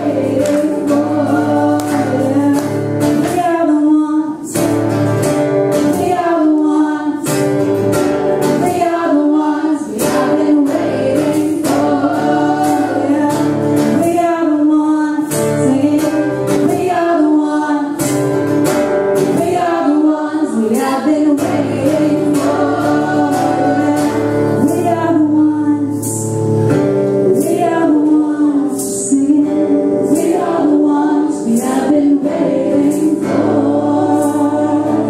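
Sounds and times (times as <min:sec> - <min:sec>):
two women singing in harmony: 0:00.0 - 0:05.0, 0:05.7 - 0:26.5, 0:27.1 - 0:35.0
strummed acoustic guitar: 0:00.0 - 0:35.0.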